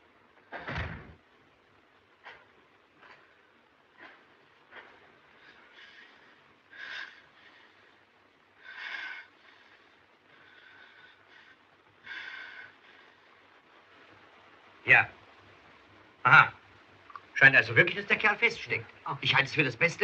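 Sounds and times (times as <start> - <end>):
faint clicks: 17.0 - 17.4.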